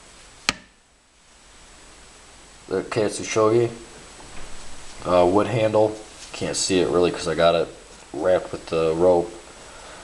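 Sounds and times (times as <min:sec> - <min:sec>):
faint room hiss: 0:00.0 - 0:10.0
sharp click: 0:00.5 - 0:00.8.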